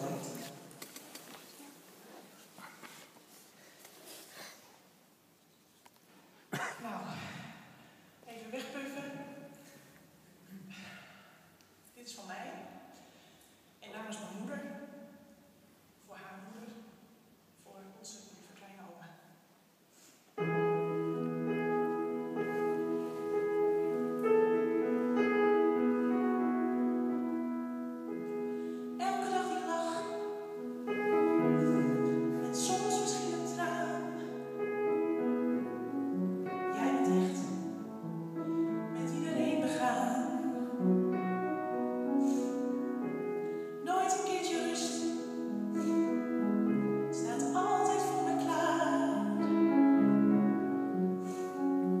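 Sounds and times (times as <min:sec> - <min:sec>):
faint rustles and clicks: 0:00.1 - 0:06.4
grand piano notes ringing: 0:20.4 - 0:52.0.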